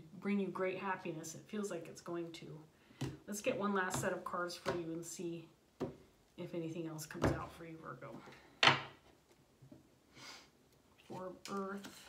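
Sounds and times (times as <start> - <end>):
cards being shuffled: 11.0 - 12.0.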